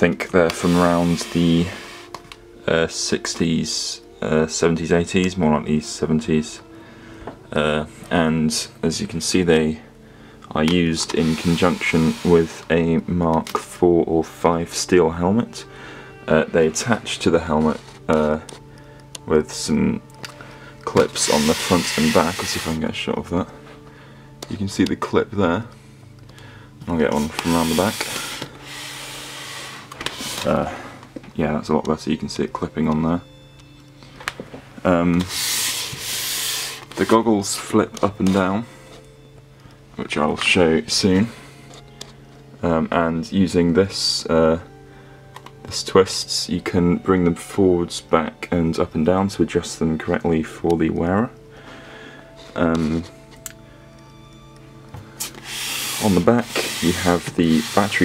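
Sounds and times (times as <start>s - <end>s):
helmet rustling against microphone: 55.2s - 58.0s.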